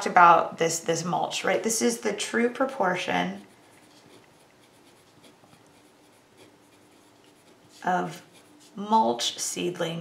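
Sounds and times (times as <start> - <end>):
pen scratching on paper: 3.4 - 9.3.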